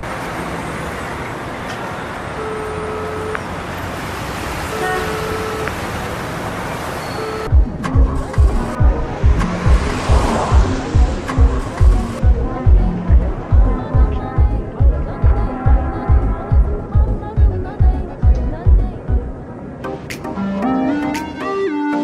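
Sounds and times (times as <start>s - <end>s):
highway traffic noise: 0.0s - 22.0s
car horn toots: 2.4s - 3.5s, 4.6s - 5.9s, 7.0s - 7.5s
kick drum thumps: 7.5s - 15.0s
music with a beat: 7.5s - 19.3s, 19.9s - 22.0s.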